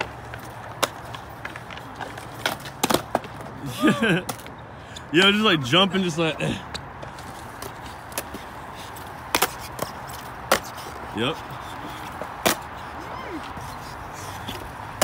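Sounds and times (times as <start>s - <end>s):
sharp skateboard clacks: 0.0s - 3.5s, 6.8s - 11.1s, 12.0s - 12.7s
skateboard wheels rolling on concrete: 0.0s - 15.0s.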